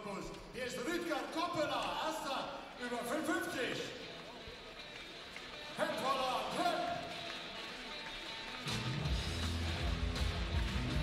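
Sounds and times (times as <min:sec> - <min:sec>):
person speaking in a hall: 0:00.0 - 0:04.3
rock music with electric guitar: 0:03.9 - 0:11.0.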